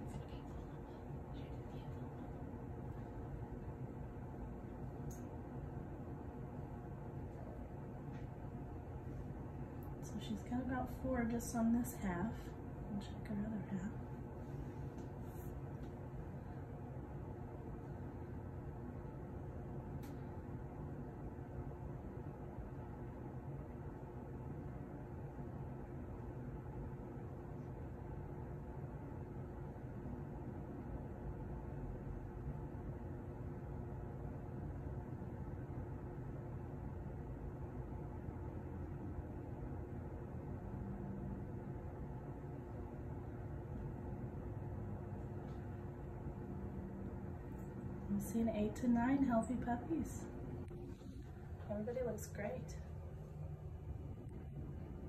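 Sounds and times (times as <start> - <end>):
faint steady tones: 0.0 - 55.0
low machine hum: 0.0 - 55.0.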